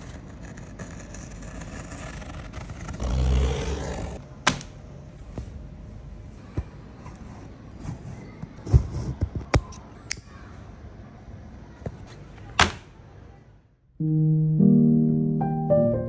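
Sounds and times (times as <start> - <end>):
soft piano-like music: 14.0 - 16.0.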